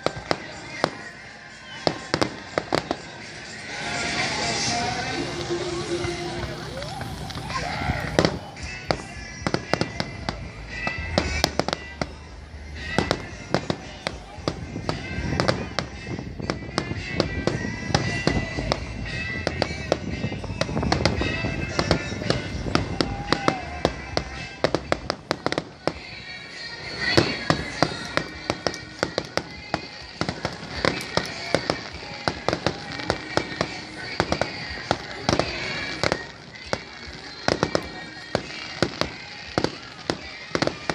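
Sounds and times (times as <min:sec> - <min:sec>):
fireworks bangs and crackles: 0:00.0 - 0:40.9
music: 0:00.0 - 0:40.9
voices: 0:00.0 - 0:40.9.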